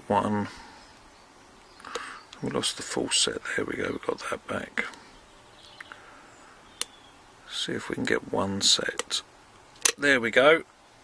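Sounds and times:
sharp metallic click: 0:09.8 - 0:10.0.

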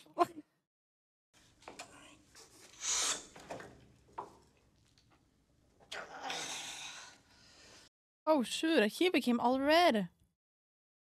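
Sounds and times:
man straining exhale: 0:05.9 - 0:07.8.

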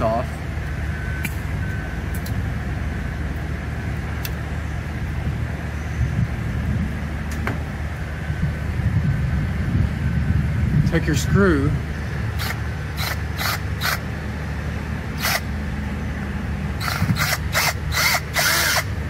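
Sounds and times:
low rumble of machinery: 0:00.0 - 0:19.0.

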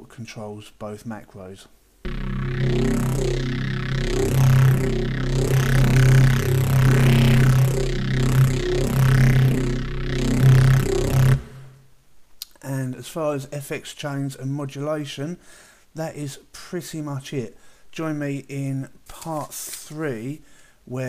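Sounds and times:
distorted bass synth sweeping: 0:02.1 - 0:11.9.

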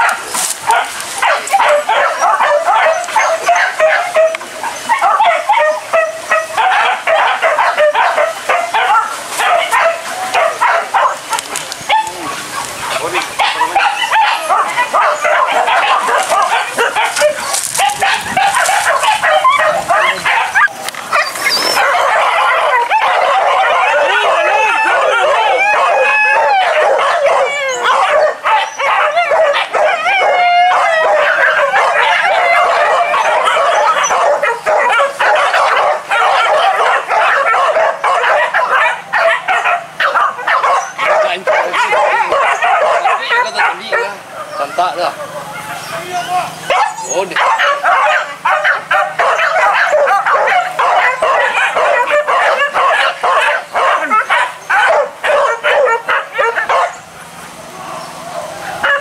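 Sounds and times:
dogs yelping and baying: 0:00.0 - 0:59.0.

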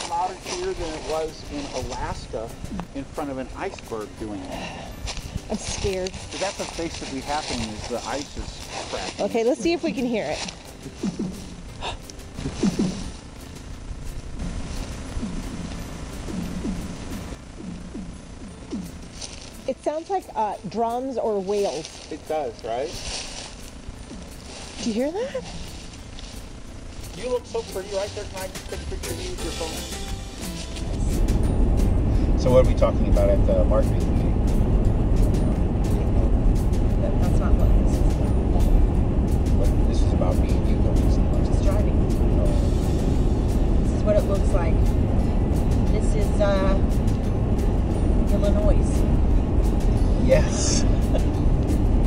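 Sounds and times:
tyre and engine rumble: 0:00.0 - 0:52.0.

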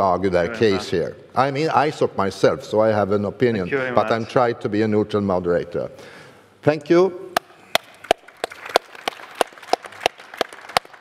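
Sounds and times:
sharp regular hand claps: 0:07.4 - 0:11.0
audience applause: 0:07.8 - 0:11.0.

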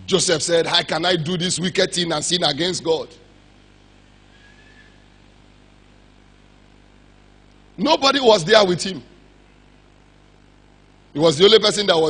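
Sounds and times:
man's amplified voice: 0:00.0 - 0:03.3, 0:07.8 - 0:09.2, 0:11.1 - 0:12.0
sound system hum: 0:00.0 - 0:12.0.

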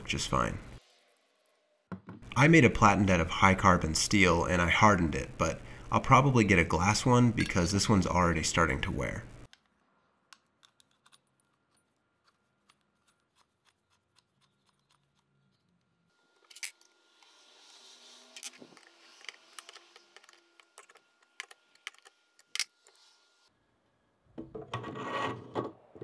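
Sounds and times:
small steel parts clicking: 0:10.3 - 0:17.3, 0:18.4 - 0:23.0.

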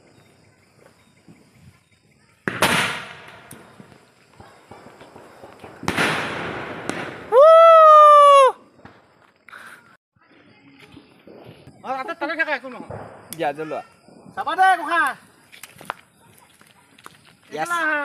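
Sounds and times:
firework shells bursting: 0:02.4 - 0:07.4.

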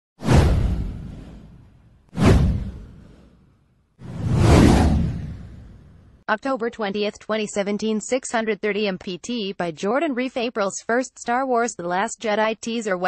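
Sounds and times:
whoosh sound effects: 0:00.2 - 0:03.4, 0:04.0 - 0:06.1.

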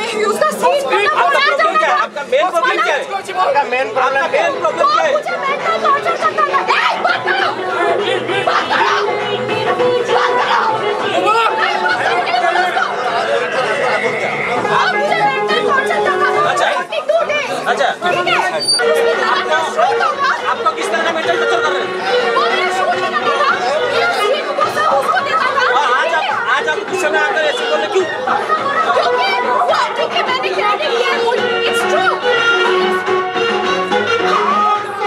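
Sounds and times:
people talking over each other: 0:00.0 - 0:35.0.

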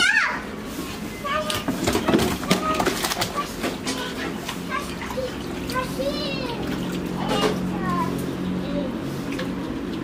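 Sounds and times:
children calling and chattering: 0:00.0 - 0:09.7.

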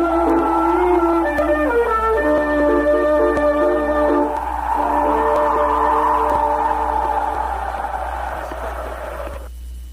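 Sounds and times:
tape hiss: 0:00.0 - 0:09.9.

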